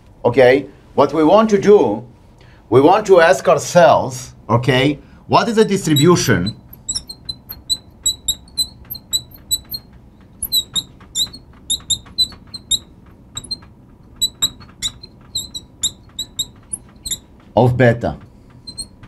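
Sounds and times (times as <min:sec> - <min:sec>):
marker squeaking on glass: 0:05.7 - 0:17.6, 0:18.3 - 0:19.0.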